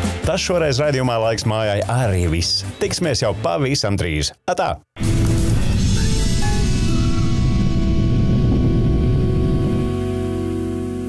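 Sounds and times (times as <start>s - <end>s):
rocket launch rumble: 5.0s - 10.2s
music with sustained chord: 5.0s - 11.0s.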